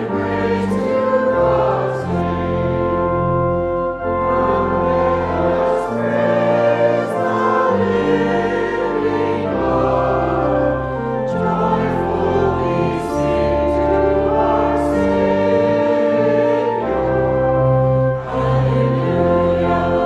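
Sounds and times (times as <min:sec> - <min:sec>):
choir singing a hymn: 0:00.0 - 0:20.0
organ bass notes: 0:00.0 - 0:20.0.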